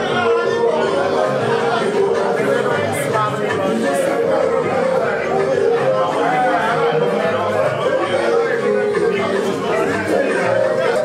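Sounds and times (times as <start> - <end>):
background music: 0.0 - 11.0
men chattering: 0.0 - 11.0.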